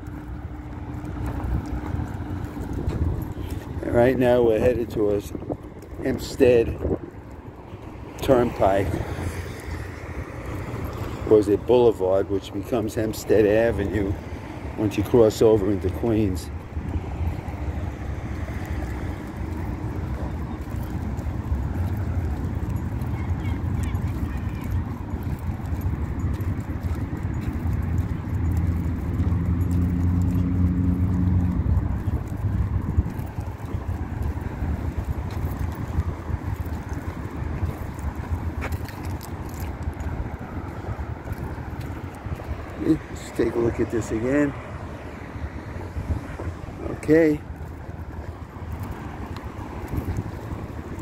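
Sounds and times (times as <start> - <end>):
road traffic passing: 0.0 - 51.0
vehicle engine hum: 0.0 - 51.0.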